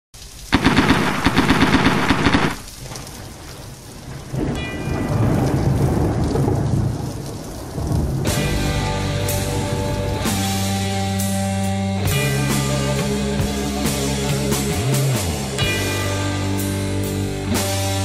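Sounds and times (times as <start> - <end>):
crackling thunderclap: 0.2 - 11.4
rain: 0.2 - 18.0
low rolling thunder rumble: 0.6 - 11.0.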